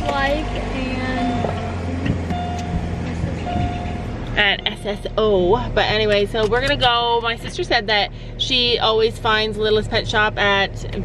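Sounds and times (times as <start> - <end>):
car engine rumble: 0.0 - 11.0
road noise: 0.0 - 11.0.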